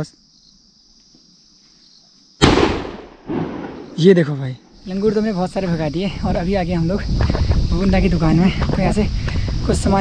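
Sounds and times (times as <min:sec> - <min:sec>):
insect buzzing: 0:00.0 - 0:10.0
firecracker bang: 0:02.4 - 0:04.1.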